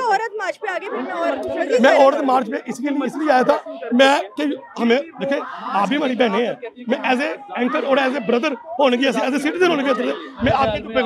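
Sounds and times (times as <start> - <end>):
crowd talking over each other: 0.0 - 11.0.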